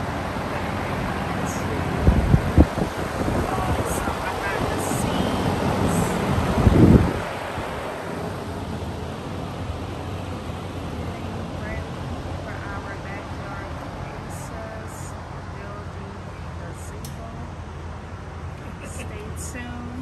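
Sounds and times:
fan air buffeting microphone: 0:00.0 - 0:20.0
steady fan hiss: 0:00.0 - 0:20.0.

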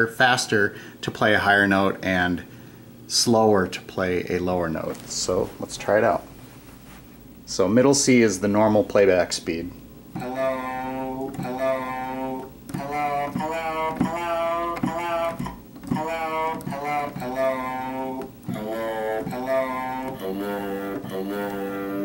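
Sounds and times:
spoken word sample at varying pitch: 0:10.2 - 0:22.0.

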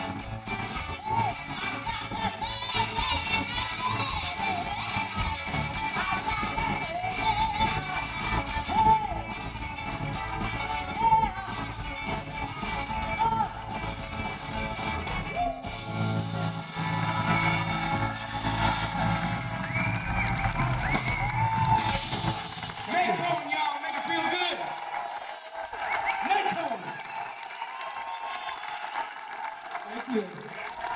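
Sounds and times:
live blues band playing: 0:00.0 - 0:22.9
crowd cheering and whooping: 0:14.8 - 0:30.9.

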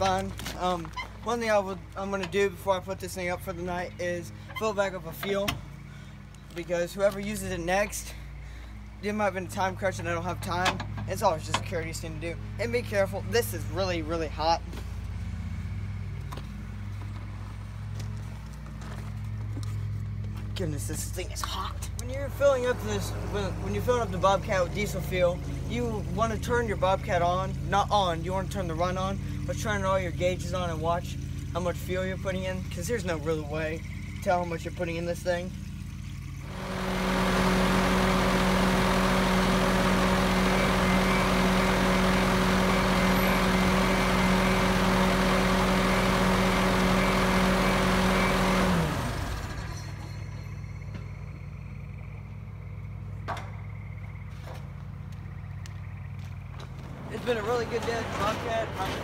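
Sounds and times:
diesel engine idling: 0:00.0 - 0:59.0.

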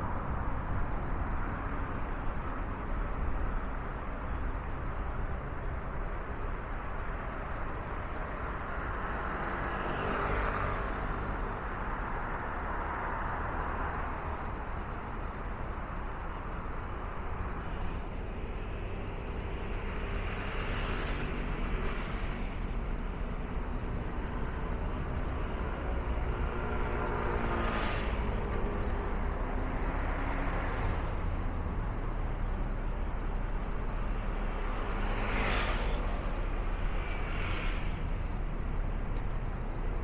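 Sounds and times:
traffic rumble: 0:00.0 - 0:40.0
vehicles swishing past: 0:08.8 - 0:11.6, 0:17.7 - 0:40.0.

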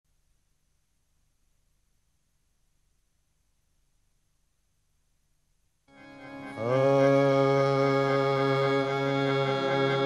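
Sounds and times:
harmonium held chord: 0:05.9 - 0:10.0.

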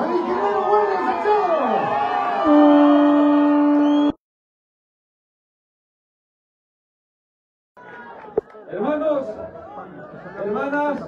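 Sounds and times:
crowd noise: 0:00.0 - 0:04.2, 0:07.8 - 0:11.0
horn blast tone: 0:02.4 - 0:04.2.

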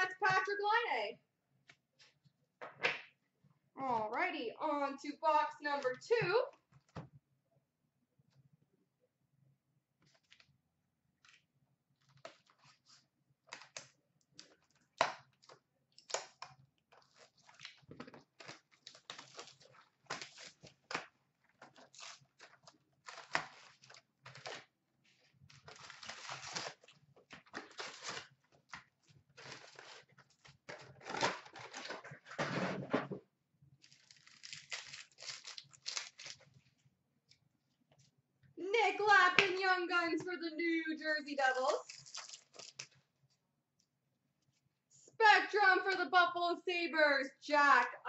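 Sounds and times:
pack wrappers tearing and crinkling: 0:17.0 - 0:21.0, 0:21.6 - 0:24.7, 0:25.5 - 0:28.8, 0:29.4 - 0:32.0, 0:33.8 - 0:36.5, 0:41.8 - 0:43.0.

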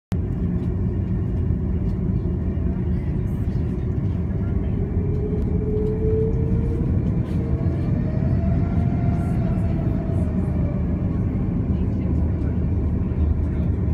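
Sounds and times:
airliner cabin rumble: 0:00.1 - 0:13.9
jet engine whine rising: 0:00.2 - 0:13.9.

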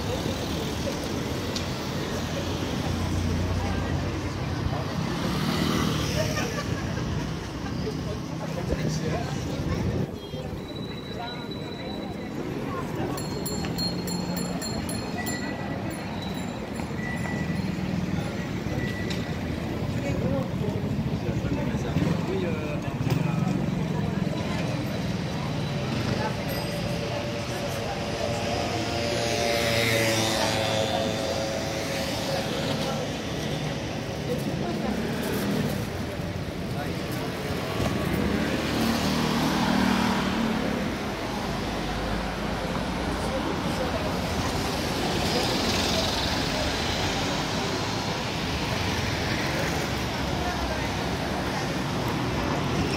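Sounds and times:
traffic passing: 0:00.0 - 0:52.9
voices of passers-by: 0:00.0 - 0:52.9.

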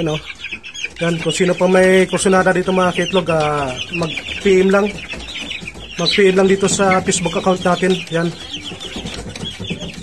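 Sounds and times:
chicks peeping: 0:00.0 - 0:10.0.

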